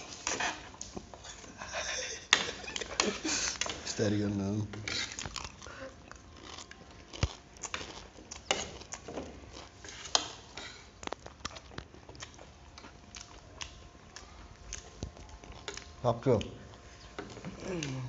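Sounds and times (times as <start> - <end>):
people chewing: 0.0 - 18.0
forks scraping plates: 4.8 - 5.2.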